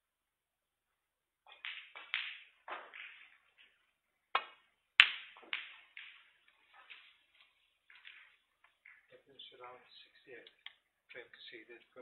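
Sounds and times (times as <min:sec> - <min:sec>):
snooker balls clicking: 0:01.4 - 0:11.2.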